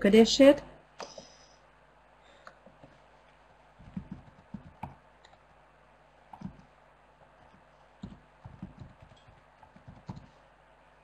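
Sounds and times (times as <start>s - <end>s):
keystrokes on computer keyboard: 3.8s - 5.4s, 6.3s - 6.7s, 7.4s - 10.3s.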